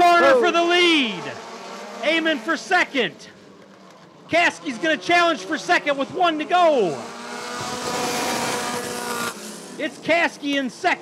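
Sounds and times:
race car engines passing: 0.0s - 11.0s.

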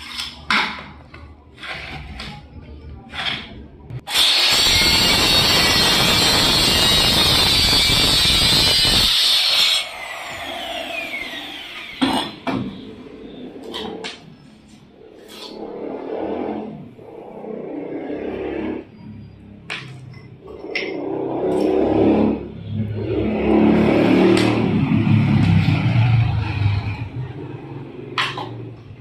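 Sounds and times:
electric marble cutter grinding: 4.1s - 12.0s.

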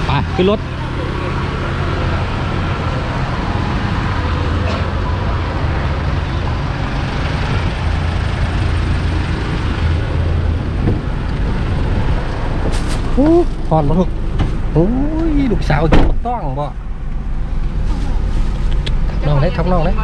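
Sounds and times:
vehicle engines rumbling: 0.0s - 20.0s.

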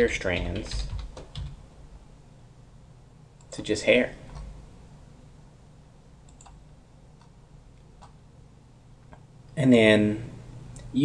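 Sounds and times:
low steady hiss: 0.0s - 11.0s
computer mouse clicks: 6.3s - 6.6s.

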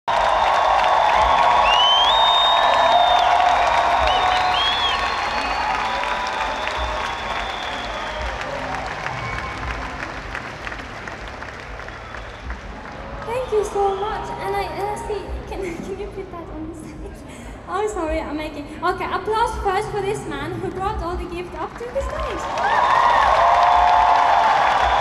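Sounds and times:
crowd applauding and cheering: 0.0s - 15.5s, 21.6s - 25.0s
shrill whistles: 1.5s - 8.5s.

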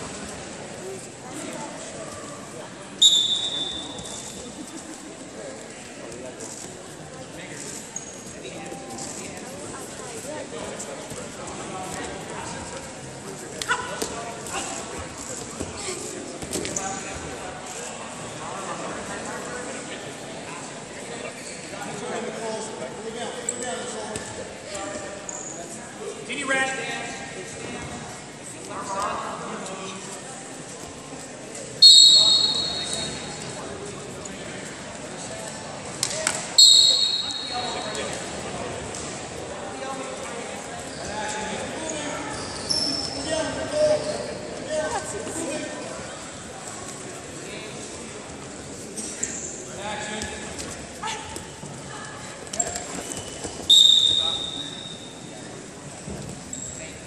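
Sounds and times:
murmur of voices: 0.0s - 57.0s
referee's whistle blast: 3.0s - 4.1s, 31.8s - 33.0s, 36.6s - 37.7s, 53.7s - 55.1s.

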